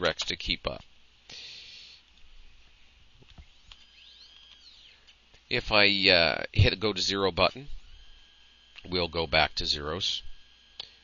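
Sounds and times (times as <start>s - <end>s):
motors whining: 3.6s - 5.2s, 7.1s - 11.0s.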